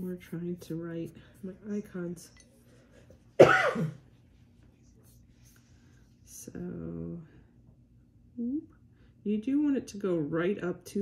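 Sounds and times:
woman coughing: 3.4s - 4.0s.

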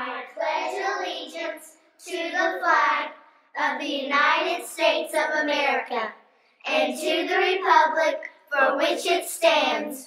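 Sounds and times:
children reciting: 0.0s - 10.0s.

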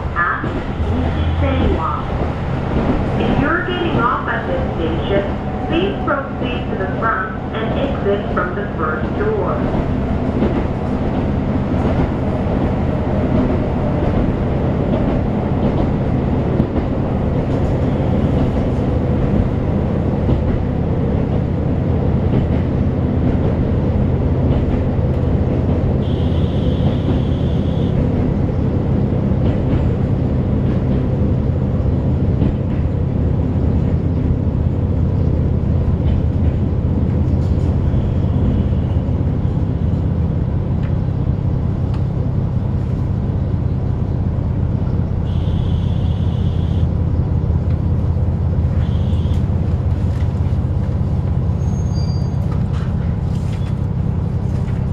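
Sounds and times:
low engine drone: 0.0s - 14.6s.

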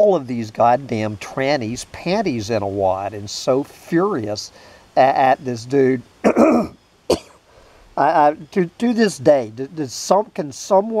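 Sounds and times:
man clearing his throat: 6.2s - 7.4s.

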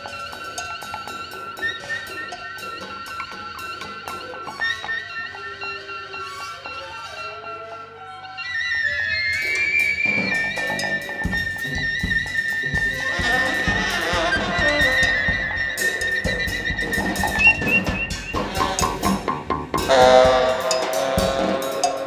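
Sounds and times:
drums: 0.0s - 7.9s, 8.6s - 22.0s
high held wind tones: 0.0s - 22.0s
jazz band playing: 9.4s - 22.0s.

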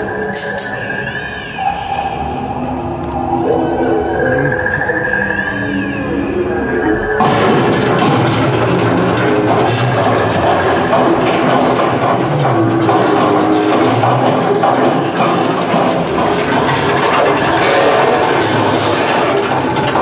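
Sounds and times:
mechanical rumble: 0.0s - 20.0s
music: 0.0s - 20.0s.

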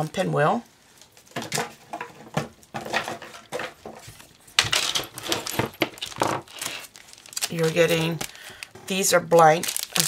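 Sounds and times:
plastic packaging rustling: 0.9s - 10.0s.

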